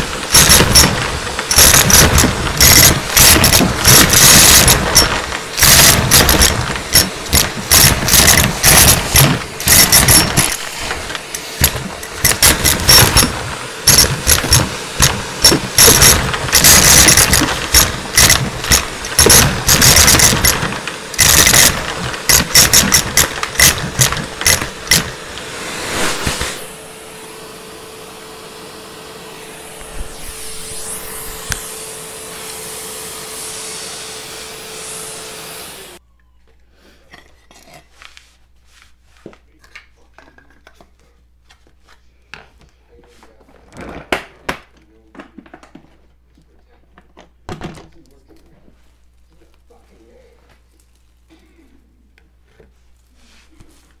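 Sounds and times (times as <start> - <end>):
coins rattling up vacuum tube: 0.0 - 25.3
vacuum motor humming: 0.0 - 36.0.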